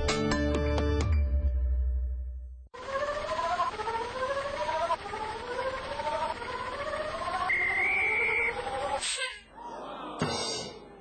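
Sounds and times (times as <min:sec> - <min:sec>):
high steady tone: 0:02.8 - 0:09.0
cartoon car engine effect: 0:02.8 - 0:09.4.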